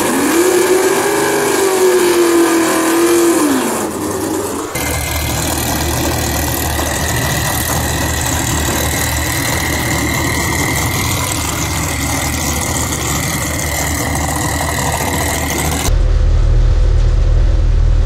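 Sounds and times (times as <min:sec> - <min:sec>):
car engine revving: 0:00.0 - 0:18.0
steady high whine: 0:03.5 - 0:18.0.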